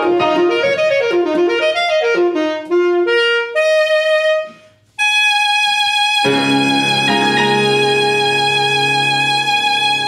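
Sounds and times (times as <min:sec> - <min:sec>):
alto saxophone held notes: 0:00.0 - 0:10.0.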